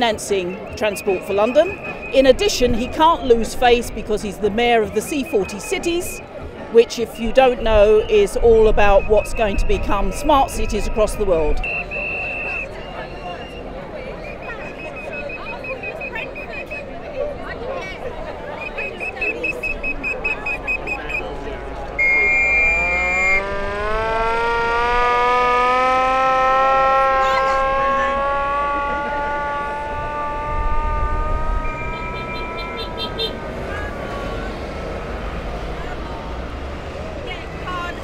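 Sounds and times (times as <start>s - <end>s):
low traffic rumble: 0.0s - 38.0s
shrill high-pitched tones: 22.0s - 33.1s
siren winding up and down: 22.0s - 33.1s.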